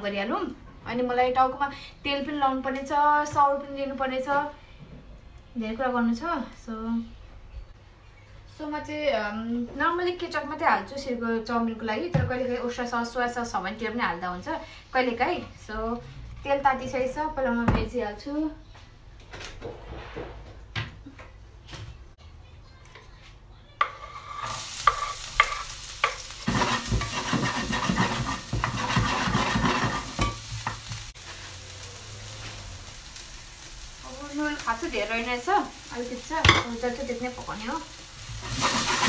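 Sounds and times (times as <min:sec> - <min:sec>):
wooden spatula scraping pan: 0:23.8 - 0:31.5, 0:38.2 - 0:39.0
food sizzling in a pan: 0:23.8 - 0:39.0.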